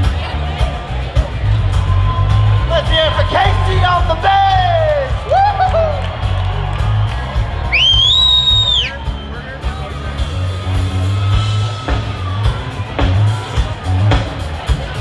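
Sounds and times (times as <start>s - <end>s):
electric bass guitar: 0.0s - 15.0s
audience whooping: 1.7s - 13.7s.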